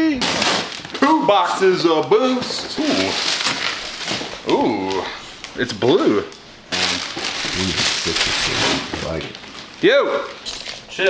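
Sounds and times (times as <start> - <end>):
plastic bag crinkling: 0.4 - 5.6, 6.7 - 11.0.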